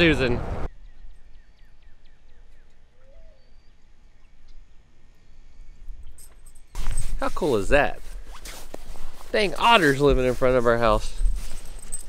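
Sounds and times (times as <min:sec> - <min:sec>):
bird chirps: 0:00.7 - 0:06.7.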